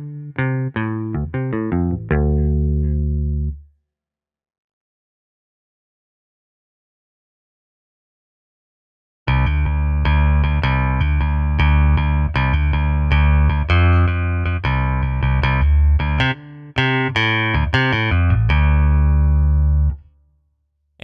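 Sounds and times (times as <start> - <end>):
electric bass line played with pick: 0.0 - 3.6, 9.3 - 20.0.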